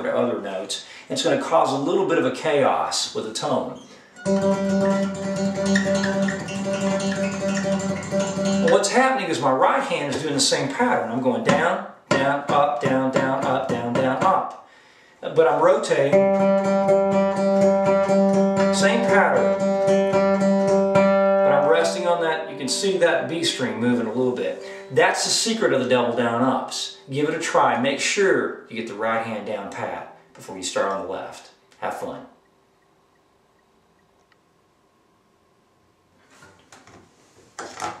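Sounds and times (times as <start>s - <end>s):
acoustic guitar flatpicking: 4.2s - 9.1s, 11.4s - 14.5s, 16.0s - 25.5s.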